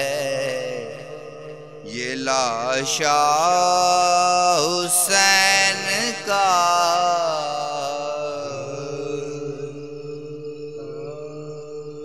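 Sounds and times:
voices humming a held chord: 7.4 - 12.0.

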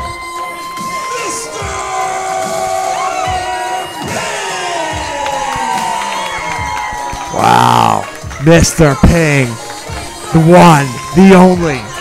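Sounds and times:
crowd cheering and shouting: 0.0 - 12.0
wrestling entrance music: 0.0 - 12.0.

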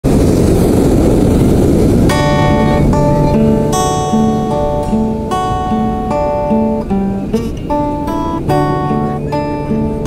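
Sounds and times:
wind and surf: 0.0 - 10.0
acoustic guitar chords: 1.8 - 10.0.

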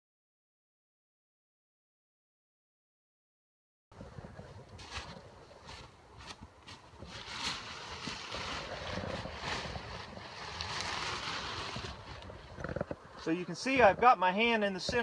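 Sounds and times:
wind rumble on microphone: 3.9 - 14.1
tent nylon rustling and crinkling: 4.0 - 13.8.

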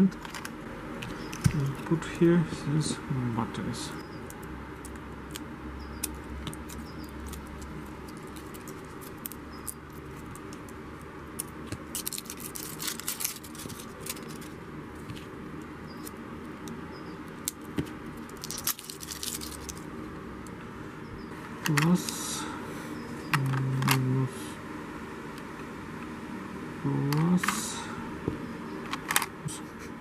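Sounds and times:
plastic crinkling: 6.0 - 10.8, 11.4 - 15.3, 17.4 - 19.9
scissors cutting plastic: 6.0 - 15.3, 16.0 - 19.8.

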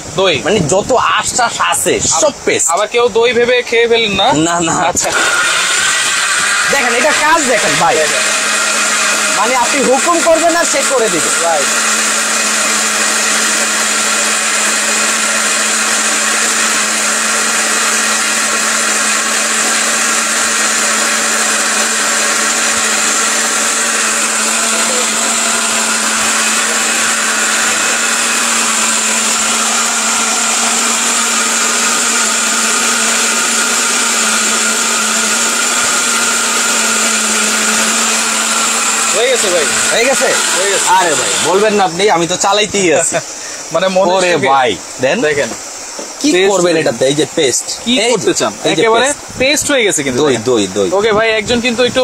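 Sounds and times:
mixer grinder running: 4.8 - 52.0.

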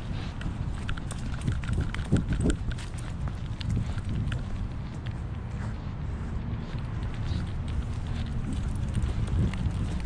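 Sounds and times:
camera harness rubbing and bumping: 0.0 - 4.4.

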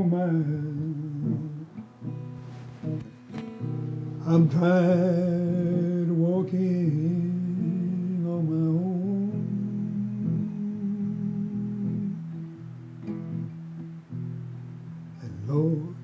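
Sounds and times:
man singing: 0.0 - 1.8, 4.2 - 12.3, 15.2 - 16.0
acoustic guitar strumming: 0.0 - 16.0.

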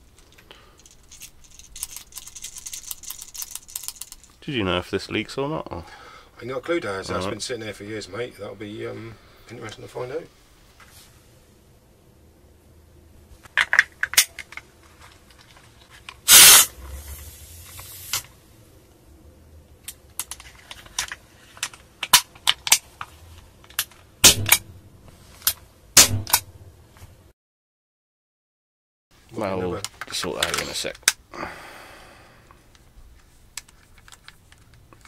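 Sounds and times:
hiss of escaping gas: 16.3 - 18.3.

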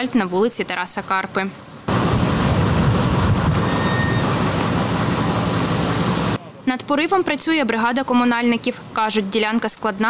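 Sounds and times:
diesel crane engine running: 1.9 - 6.4.

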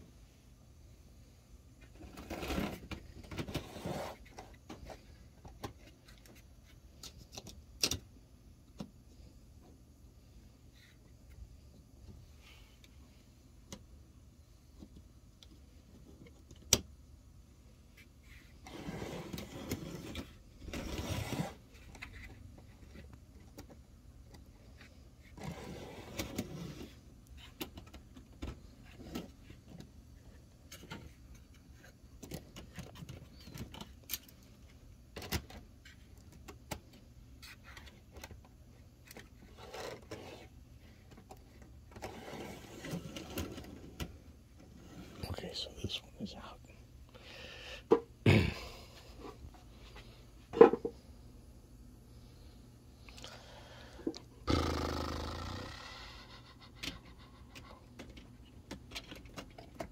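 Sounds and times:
faint low hum: 0.0 - 59.9
rustling and scraping: 1.8 - 7.6, 17.9 - 23.8, 24.6 - 45.3.

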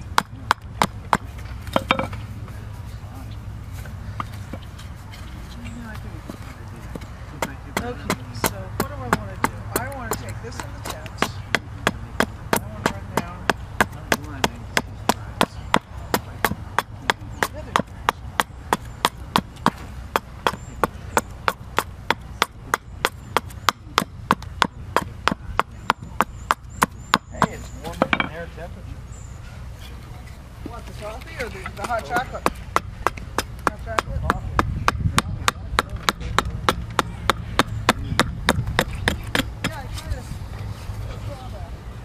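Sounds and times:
axe chopping wood: 0.0 - 2.2, 7.4 - 28.3, 31.6 - 39.8.

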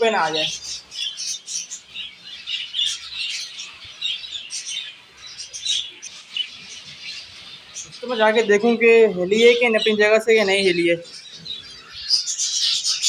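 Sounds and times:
finches chirping: 0.0 - 13.0.

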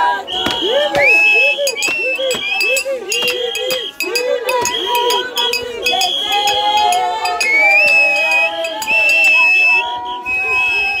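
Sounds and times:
crowd celebrating: 0.0 - 11.0.

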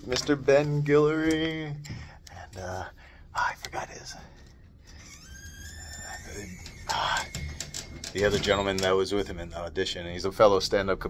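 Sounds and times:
whispered vocal sounds: 2.3 - 4.5.

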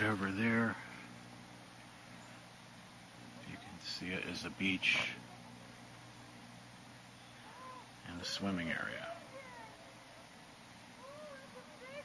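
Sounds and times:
quiet background hum: 0.0 - 12.0
faint bird calls: 7.0 - 12.0.

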